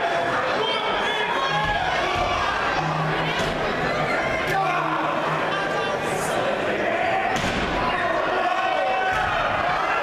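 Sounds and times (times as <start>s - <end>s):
crowd shouting and chatter: 0.0s - 10.0s.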